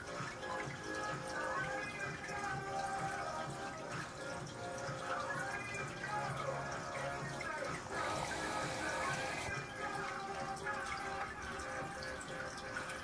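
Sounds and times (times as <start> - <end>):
background music: 0.0 - 13.0
water trickling and splashing: 0.0 - 13.0
water hissing: 7.8 - 9.5.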